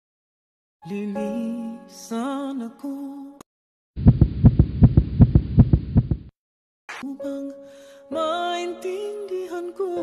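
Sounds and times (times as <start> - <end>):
fast heartbeat thumps: 4.0 - 6.3.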